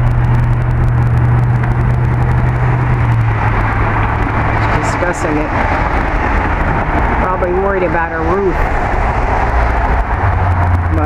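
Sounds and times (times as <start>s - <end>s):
road noise: 0.0s - 11.0s
vehicle engine humming: 0.0s - 11.0s.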